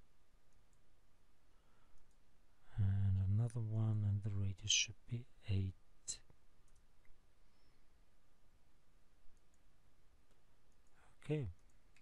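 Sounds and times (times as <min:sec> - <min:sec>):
faint computer mouse clicks: 0:01.9 - 0:02.2.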